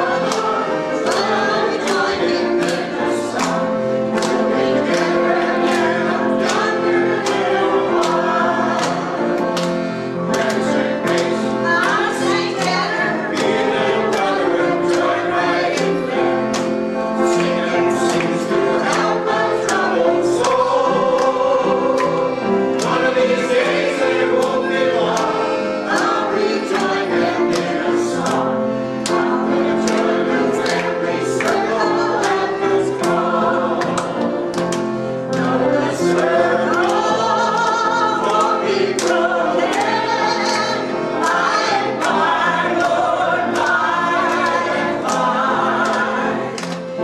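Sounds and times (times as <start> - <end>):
choir singing in harmony: 0.0 - 47.0.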